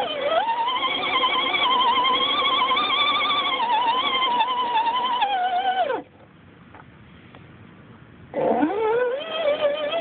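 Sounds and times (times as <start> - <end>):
toy car motor and gears whining: 0.0 - 6.1, 8.4 - 10.0.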